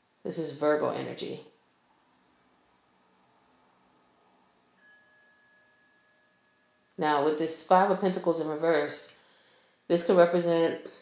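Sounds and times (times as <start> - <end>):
faint ringing tone: 4.4 - 7.3.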